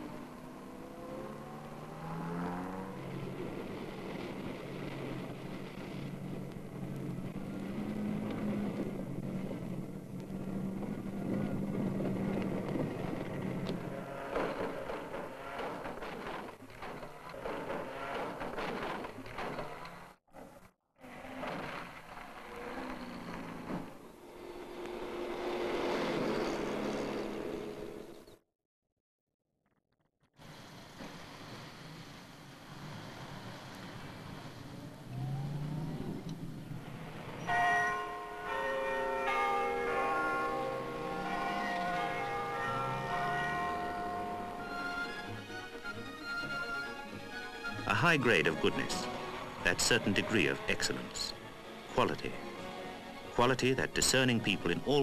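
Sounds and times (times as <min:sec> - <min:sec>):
car engines revving hard: 0:00.0 - 0:14.8, 0:21.0 - 0:28.1, 0:31.1 - 0:37.4
cars rattling and knocking: 0:02.8 - 0:24.3.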